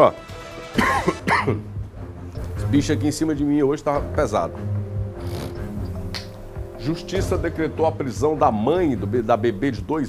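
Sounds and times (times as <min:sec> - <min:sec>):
man coughing: 0:00.8 - 0:01.7.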